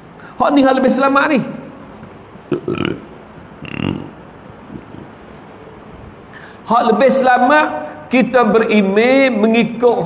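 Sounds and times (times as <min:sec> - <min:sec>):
man's rough throat sound: 0:02.5 - 0:05.1.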